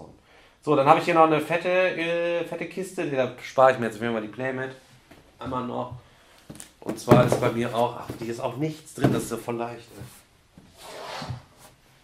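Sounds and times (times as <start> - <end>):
cardboard boxes rustling and sliding: 7.0 - 8.4, 9.0 - 11.8.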